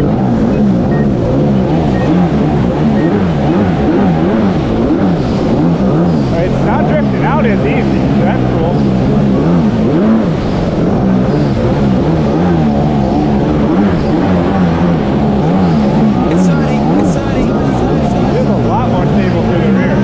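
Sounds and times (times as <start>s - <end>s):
jet ski engine revving: 0.0s - 20.0s
water rushing under hull: 0.0s - 20.0s.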